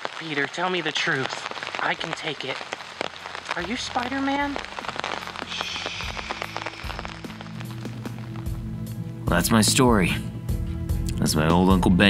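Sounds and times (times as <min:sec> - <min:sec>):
rain falling: 0:00.0 - 0:09.3
music with low held notes: 0:07.6 - 0:12.0.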